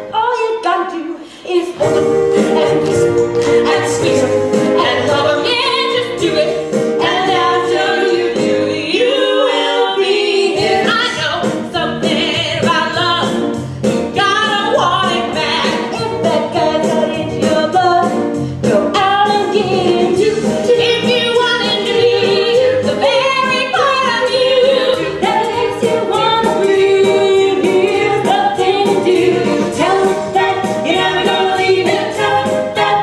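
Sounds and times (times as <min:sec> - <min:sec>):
voices singing with accompaniment: 0:01.2 - 0:33.0.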